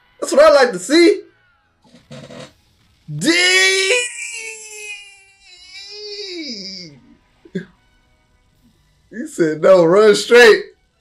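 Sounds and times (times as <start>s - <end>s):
character yelling: 3.1s - 7.0s.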